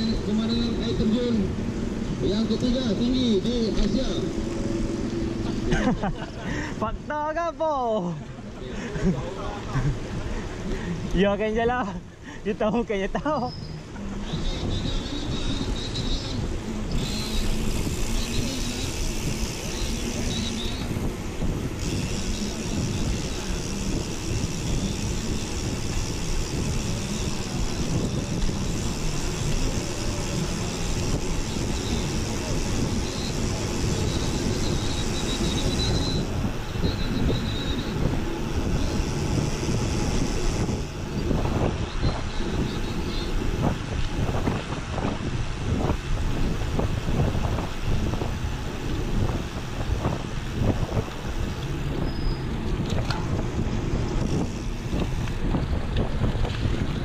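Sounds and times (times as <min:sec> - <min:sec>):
bike clicks and rattles: 0:00.0 - 0:06.8, 0:13.2 - 0:57.0
bike tyre rumble on pavement: 0:00.0 - 0:11.6, 0:13.1 - 0:57.0
wind buffeting microphone: 0:13.4 - 0:57.0.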